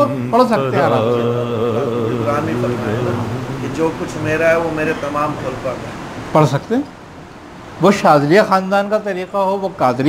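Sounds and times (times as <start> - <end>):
man chanting: 0.0 - 5.7.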